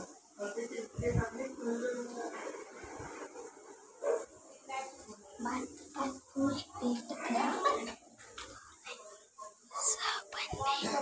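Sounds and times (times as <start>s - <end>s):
dog barking: 4.0s - 4.4s, 9.4s - 10.0s.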